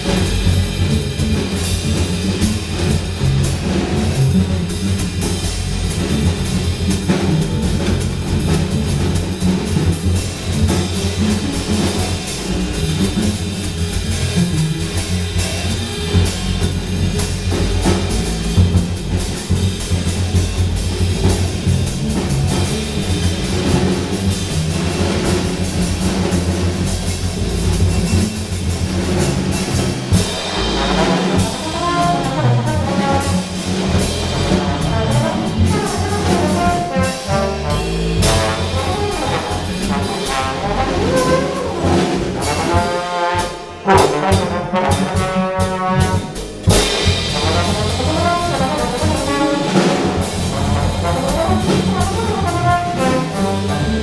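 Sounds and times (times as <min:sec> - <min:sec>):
drum kit playing: 0:00.0 - 0:54.0
upright double bass: 0:00.0 - 0:54.0
trombone sliding notes: 0:29.1 - 0:54.0.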